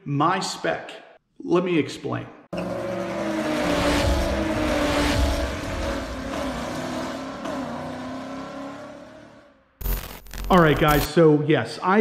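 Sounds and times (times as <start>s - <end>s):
car engine running: 2.6s - 11.1s.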